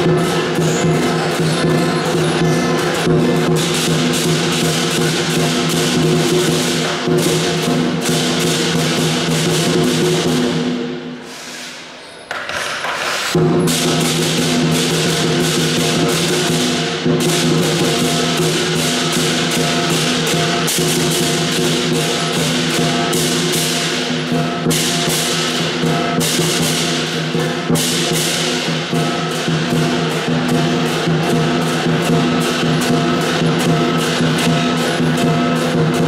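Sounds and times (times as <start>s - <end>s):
large drum beating: 0.0s - 11.0s, 13.3s - 36.0s
hand cymbals clashing: 0.0s - 36.0s.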